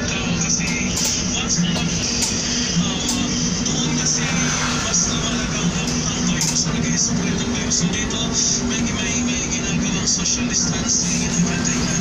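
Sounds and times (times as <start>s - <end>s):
bus engine idling: 0.0s - 12.0s
music with singing voice: 0.0s - 12.0s.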